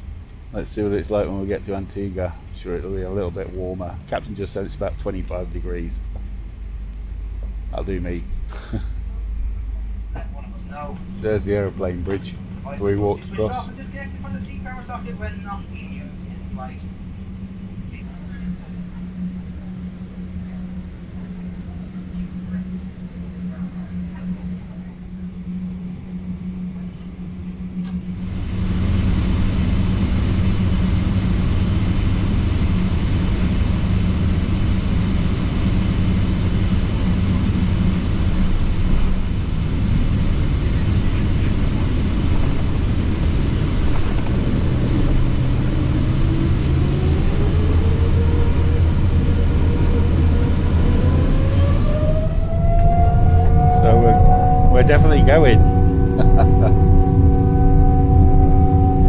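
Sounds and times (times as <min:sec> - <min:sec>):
airplane cabin hum: 0:00.0 - 0:59.0
jet engines rumbling and whining: 0:00.0 - 0:59.0.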